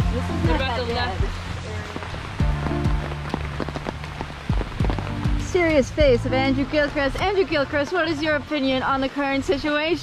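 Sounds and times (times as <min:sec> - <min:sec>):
background music with low notes: 0:00.0 - 0:08.5
rain falling: 0:00.0 - 0:10.0.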